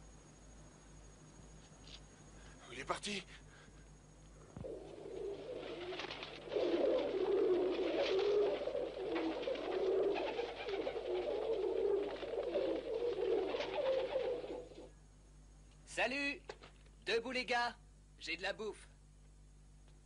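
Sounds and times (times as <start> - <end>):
pigeons cooing: 4.6 - 14.9.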